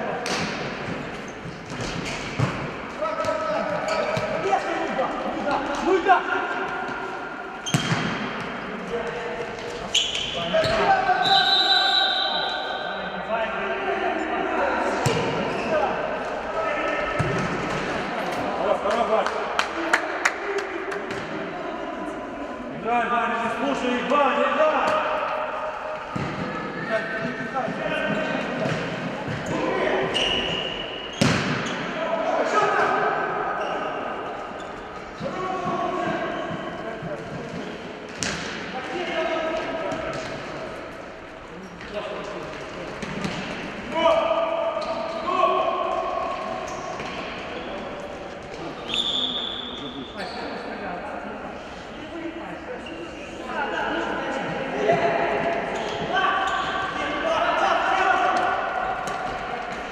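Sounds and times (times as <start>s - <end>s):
ball kicked and bouncing: 7.7s - 8.2s.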